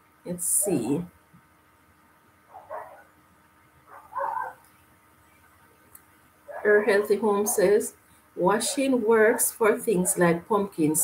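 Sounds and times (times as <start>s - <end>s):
dog barking: 2.5s - 3.1s, 3.9s - 4.6s, 6.5s - 7.6s.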